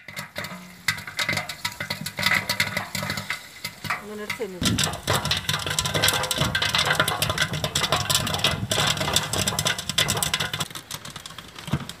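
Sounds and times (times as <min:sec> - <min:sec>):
food sizzling in a pan: 0:00.0 - 0:05.1
clicks and scrapes of stirring: 0:00.0 - 0:12.0.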